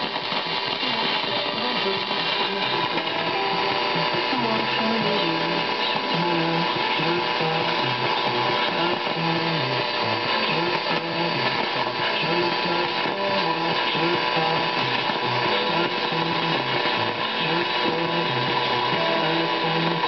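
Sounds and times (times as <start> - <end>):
faint radio music: 0.0 - 20.0
radio static hiss: 0.0 - 20.0.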